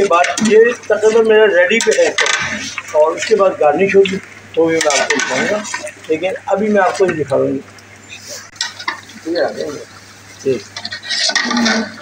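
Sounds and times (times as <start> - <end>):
metal spoon scraping pot: 10.7 - 12.0.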